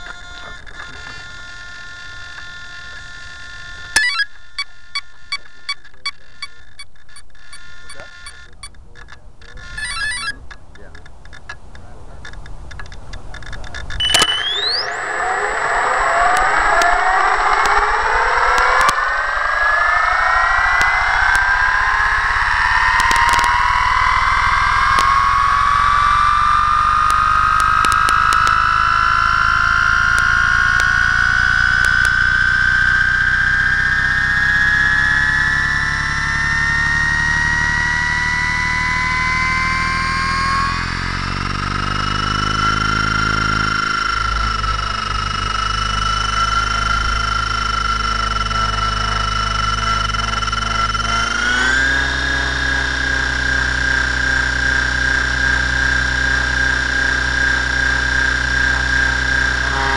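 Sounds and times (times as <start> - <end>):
helicopter motor whine rising: 0.0 - 59.9
sharp clicks: 5.3 - 19.2, 19.8 - 35.3, 40.4 - 59.8
short beep: 9.8 - 10.4, 14.0 - 15.4.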